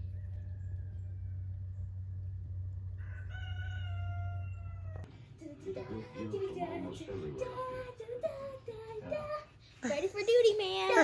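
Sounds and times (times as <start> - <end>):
rooster crowing: 0.0 - 1.8, 2.9 - 5.1
steady low rumble: 0.0 - 3.3.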